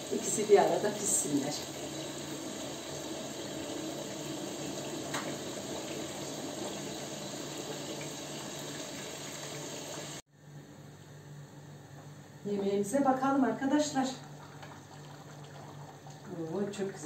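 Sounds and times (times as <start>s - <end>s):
tap running into sink: 4.7s - 7.0s.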